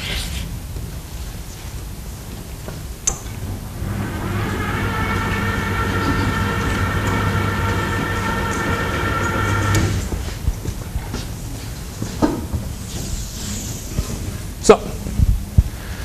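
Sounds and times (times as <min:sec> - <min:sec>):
electric motor humming: 0:03.4 - 0:10.4.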